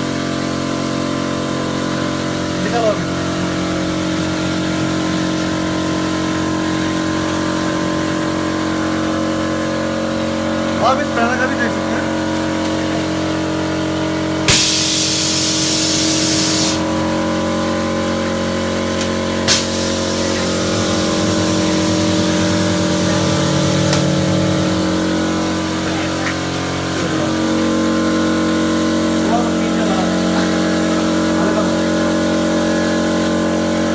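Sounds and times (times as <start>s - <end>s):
machine humming: 0.0s - 33.9s
hiss: 14.5s - 16.8s, 19.5s - 20.5s.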